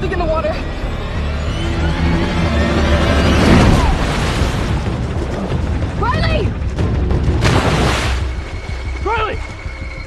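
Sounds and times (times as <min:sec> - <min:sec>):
dramatic film score: 0:00.0 - 0:10.0.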